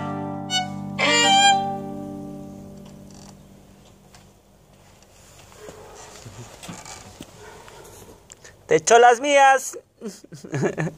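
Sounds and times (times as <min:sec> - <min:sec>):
faint knocks and shuffling: 0:02.6 - 0:08.4.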